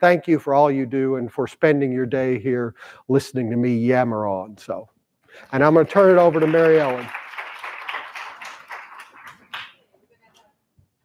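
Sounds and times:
audience applause: 5.6s - 9.8s.

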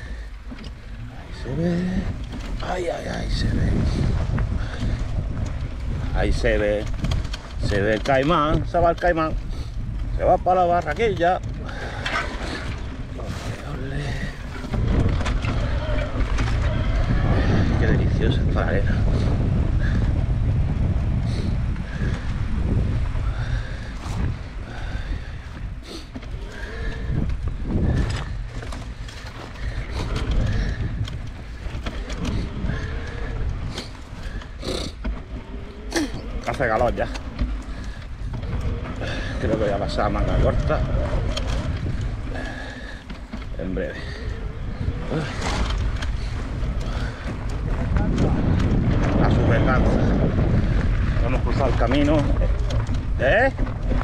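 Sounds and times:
bike clattering over bumps: 0.0s - 54.0s
wind on microphone: 0.0s - 54.0s.

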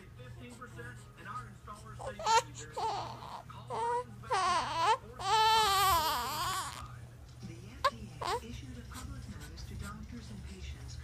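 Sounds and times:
infant crying: 2.0s - 6.9s.

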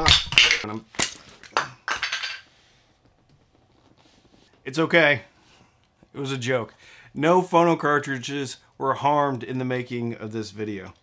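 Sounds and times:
small hard pieces clattering: 0.0s - 2.4s.

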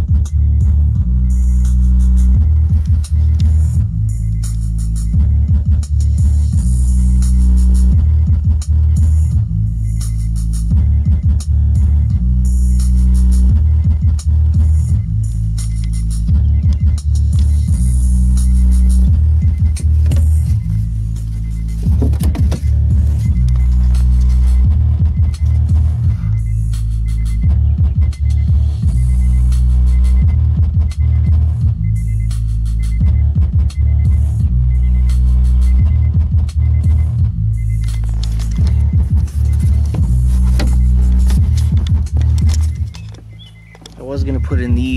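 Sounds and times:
bass-heavy electronic music: 0.0s - 44.9s.

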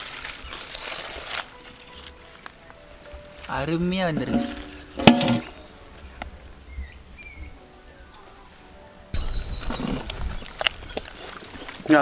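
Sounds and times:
faint bird chirps: 6.2s - 12.0s.

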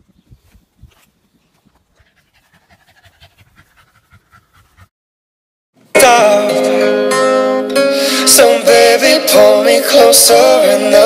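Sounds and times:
puppy panting quickly: 1.8s - 4.9s.

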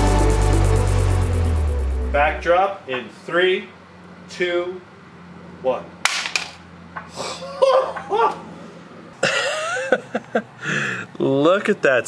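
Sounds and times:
man laughing: 9.2s - 10.5s.

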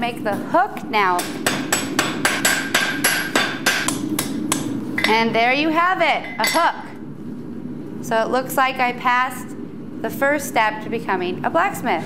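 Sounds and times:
hammer striking iron on anvil: 1.2s - 5.2s.

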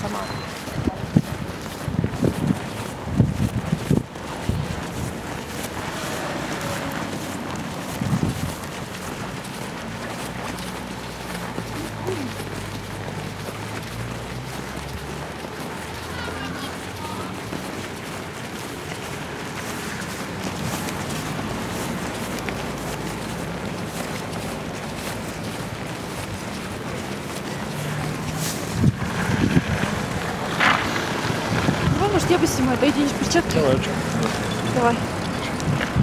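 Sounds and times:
wind buffeting microphone: 0.0s - 11.4s, 23.5s - 36.0s
street background noise: 0.0s - 36.0s.

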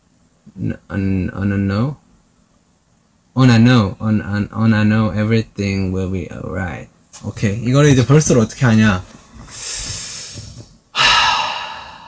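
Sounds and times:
person breathing close to microphone: 9.3s - 12.0s.

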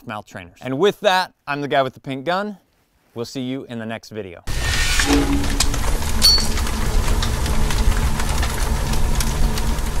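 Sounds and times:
crackles and clicks: 4.5s - 10.0s
low rumble: 4.5s - 10.0s.

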